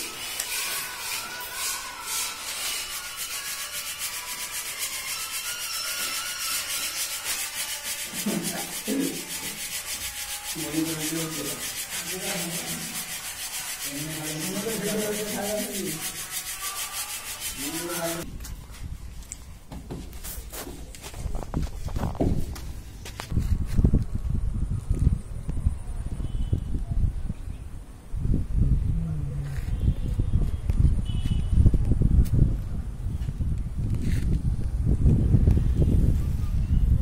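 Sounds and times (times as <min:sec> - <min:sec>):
granules rasping in shaken sieve: 0:00.1 - 0:18.2.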